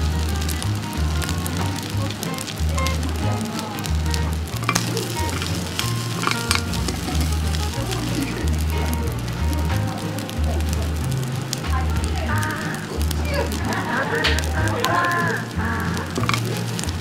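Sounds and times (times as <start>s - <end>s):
background music with bass line: 0.0s - 17.0s
rice sizzling in a pan: 0.0s - 17.0s.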